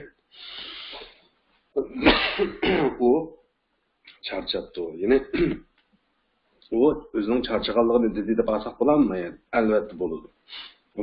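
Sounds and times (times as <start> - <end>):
man speaking: 1.8 - 3.5, 4.1 - 5.7, 6.6 - 11.0
man clearing his throat: 1.9 - 3.0, 5.3 - 5.7.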